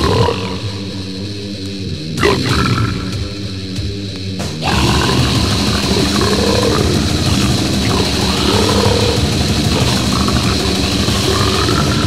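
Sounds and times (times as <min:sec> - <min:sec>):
deep guttural vocals: 0:00.0 - 0:12.0
distorted guitars and bass: 0:00.0 - 0:12.0
fast drums: 0:00.0 - 0:12.0.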